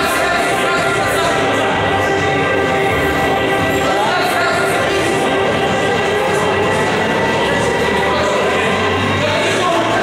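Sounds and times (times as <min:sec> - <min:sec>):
music over sound system: 0:00.0 - 0:10.0.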